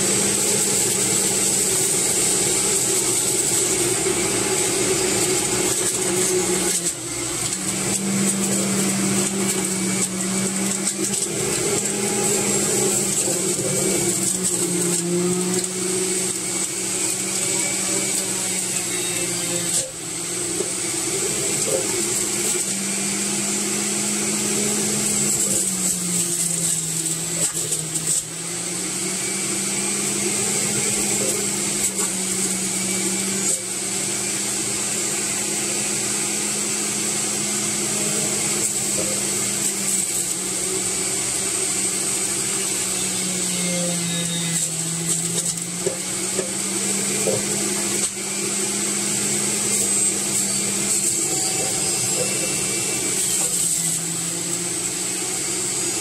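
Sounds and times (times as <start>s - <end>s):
electric juicer whining: 0.0s - 56.0s.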